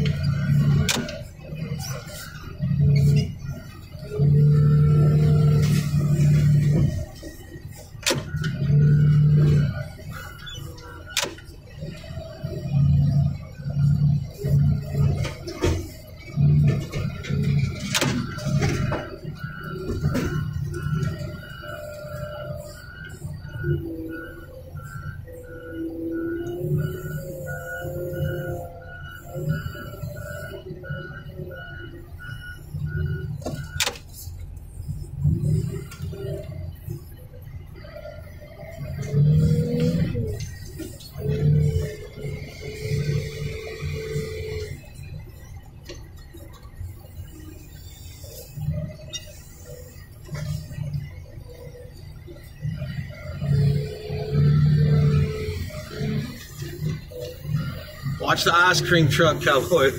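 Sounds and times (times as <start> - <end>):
loader engine and hydraulics humming: 0.0 - 59.9.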